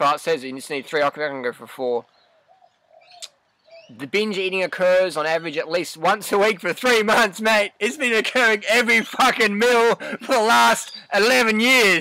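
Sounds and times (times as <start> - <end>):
faint low bird calls: 1.9 - 5.6, 10.7 - 12.0.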